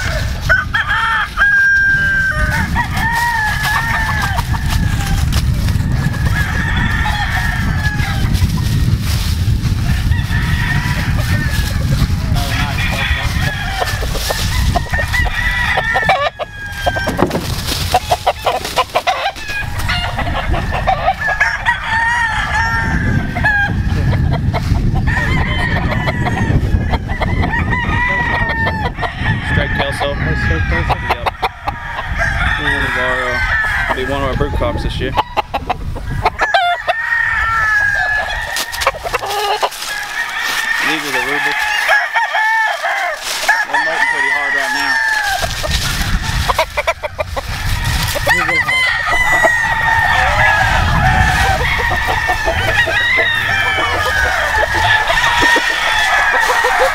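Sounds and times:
chickens clucking: 0:00.0 - 0:21.8, 0:22.6 - 0:42.1, 0:42.8 - 0:56.9
roosters crowing: 0:00.0 - 0:56.9.

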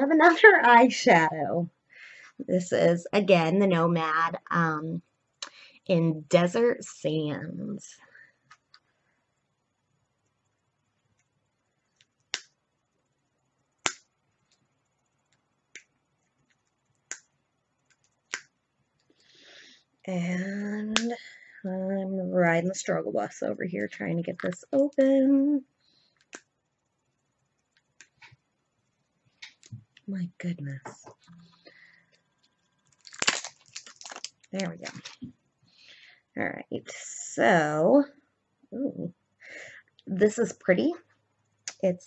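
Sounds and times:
plastic container clicks and crackles: 0:32.9 - 0:35.3.

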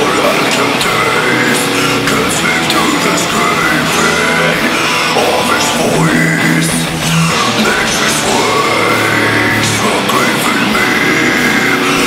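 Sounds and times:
death metal song: 0:00.0 - 0:12.0
distorted guitars: 0:00.0 - 0:12.0
harsh growled vocal: 0:00.0 - 0:12.0.

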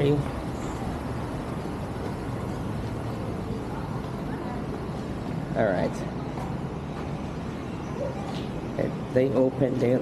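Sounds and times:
city street traffic rumble: 0:00.0 - 0:10.0.

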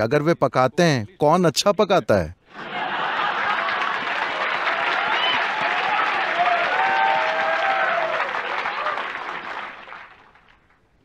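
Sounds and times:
audience applauding: 0:02.6 - 0:10.8.

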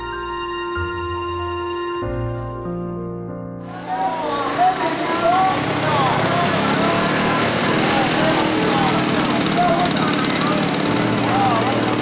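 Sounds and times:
crowd chatter and calls: 0:03.6 - 0:12.0
steady mechanical drone: 0:03.7 - 0:12.0.

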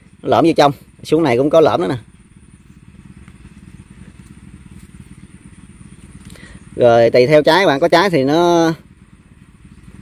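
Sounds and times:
distant motor rumbling: 0:00.0 - 0:10.0
faint ticks: 0:02.7 - 0:05.3.

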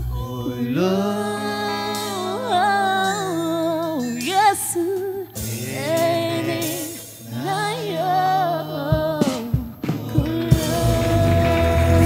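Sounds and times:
woman singing gospel song: 0:00.0 - 0:12.0.

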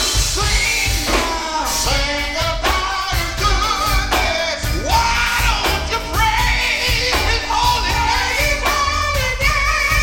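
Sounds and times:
backing voices singing: 0:00.0 - 0:10.0
band with drums: 0:00.0 - 0:10.0
man singing into a microphone: 0:00.0 - 0:10.0.

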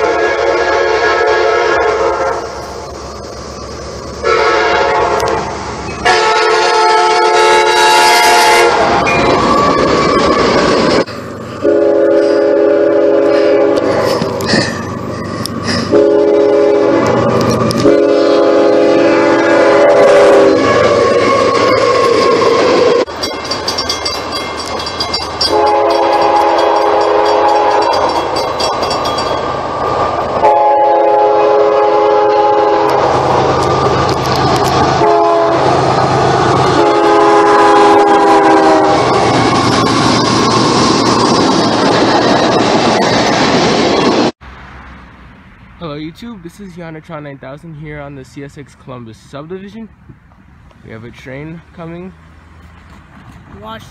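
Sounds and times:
locomotive air horn blasts: 0:00.0 - 0:02.6, 0:04.2 - 0:09.4, 0:11.6 - 0:14.2, 0:15.9 - 0:22.5, 0:25.4 - 0:28.2, 0:30.4 - 0:33.2, 0:35.0 - 0:35.7, 0:36.7 - 0:39.2
freight train rumbling past: 0:00.0 - 0:53.9.

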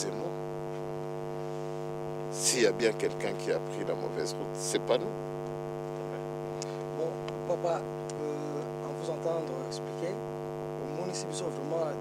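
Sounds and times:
steady electrical hum: 0:00.0 - 0:12.0.

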